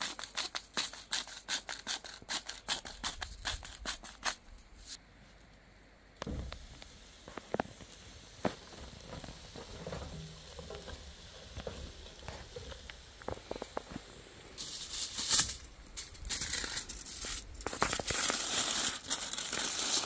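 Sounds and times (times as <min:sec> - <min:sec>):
aluminium foil crinkling: 0:00.0 - 0:05.0, 0:06.2 - 0:20.0
steak sizzling on a grill: 0:06.2 - 0:20.0.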